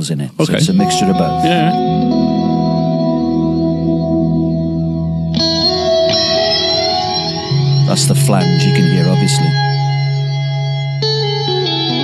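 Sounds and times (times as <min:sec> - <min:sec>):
electric guitar chords with reverb: 0:00.5 - 0:12.0.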